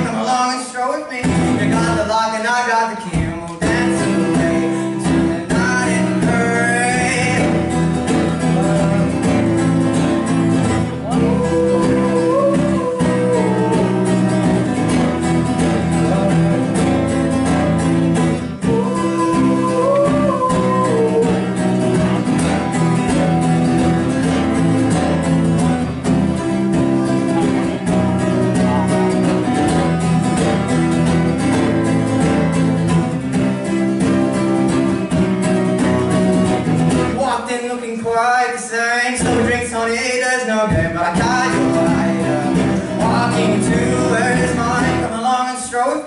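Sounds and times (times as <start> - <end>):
acoustic guitar strumming: 0.0 - 46.0.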